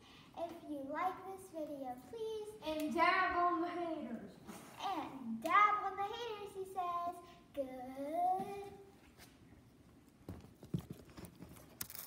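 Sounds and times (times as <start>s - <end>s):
child singing wordless tones: 0.4s - 9.0s.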